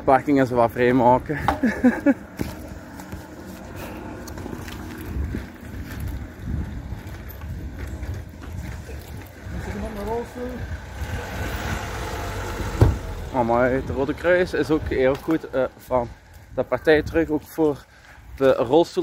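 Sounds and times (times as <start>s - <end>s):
low outdoor rumble: 0.0s - 18.2s.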